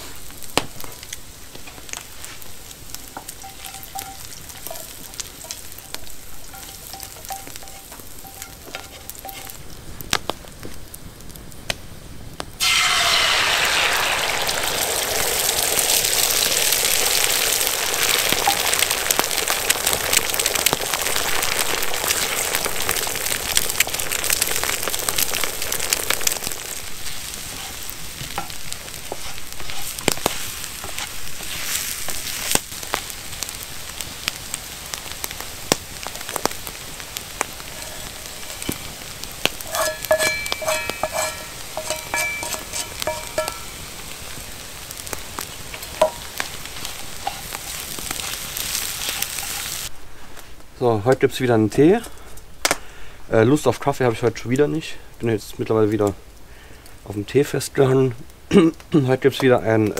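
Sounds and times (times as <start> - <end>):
eggs sizzling in frying pan: 0.0 - 59.9
spatula scraping and tapping pan: 1.6 - 9.6, 26.4 - 32.6, 37.4 - 44.4, 45.4 - 49.9.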